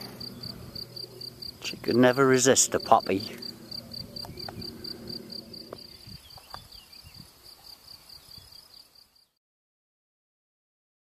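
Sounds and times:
cricket chirping: 0.0s - 9.4s.

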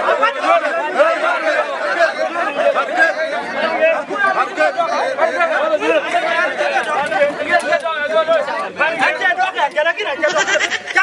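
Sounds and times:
men talking over one another: 0.0s - 11.0s.

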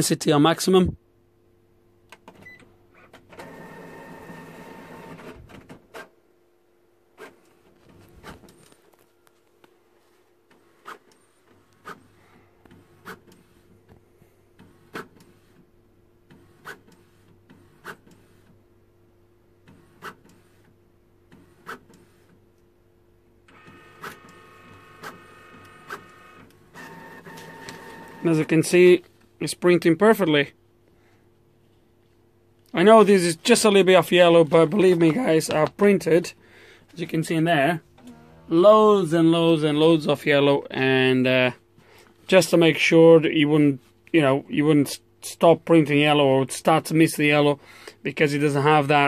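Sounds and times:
printer motor whirring: 23.5s - 28.6s.

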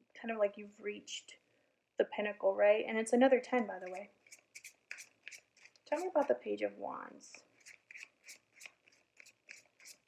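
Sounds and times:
cards shuffling: 3.8s - 6.2s, 7.6s - 10.0s.

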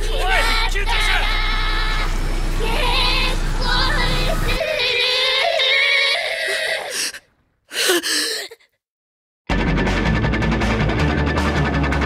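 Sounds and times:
eerie wavering wail: 0.0s - 7.1s.

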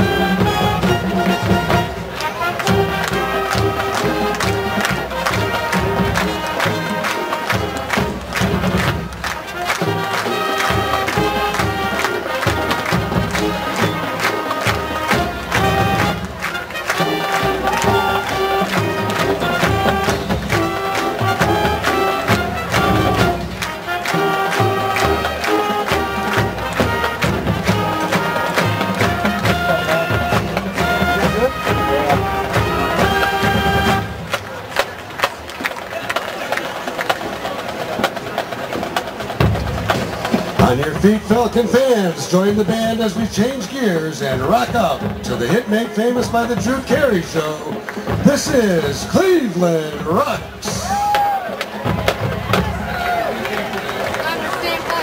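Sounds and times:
marching band playing: 0.0s - 55.0s.

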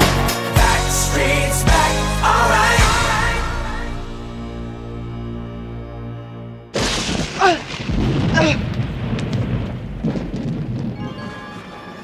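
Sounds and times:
steady rain: 6.8s - 12.0s
thunder rumbling: 6.8s - 12.0s.

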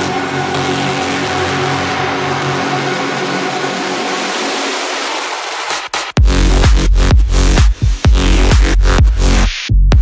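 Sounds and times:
noise wash: 0.0s - 6.8s
electronic dance music build-up: 0.0s - 10.0s.

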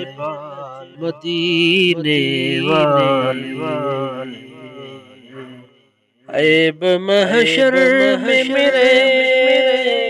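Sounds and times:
man singing: 0.0s - 5.6s, 6.3s - 10.0s.

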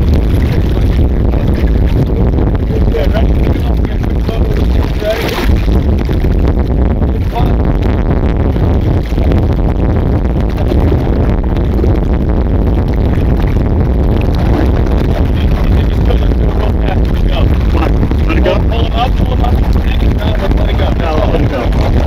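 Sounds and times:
water against boat hull: 0.0s - 22.0s
wind rumble on microphone: 0.0s - 22.0s
faint voices: 14.4s - 22.0s.

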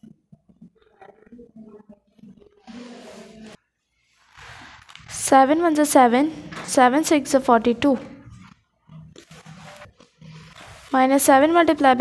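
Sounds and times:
pen scratching on paper: 8.4s - 12.0s.

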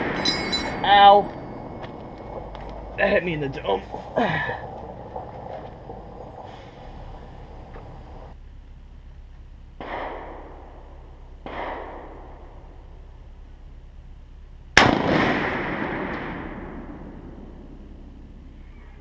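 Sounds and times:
rifle shots: 9.8s - 10.8s, 11.4s - 12.6s, 14.8s - 17.3s.

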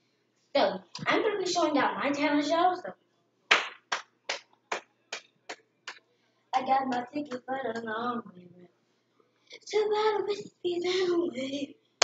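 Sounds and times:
hands clapping a steady beat: 3.5s - 6.0s, 6.8s - 7.9s.

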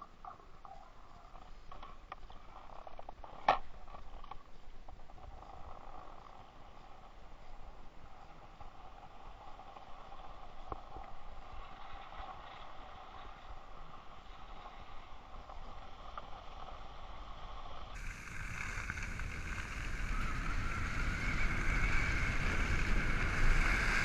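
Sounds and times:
skis sliding over snow: 5.1s - 24.0s
wind rushing on microphone: 17.9s - 24.0s.

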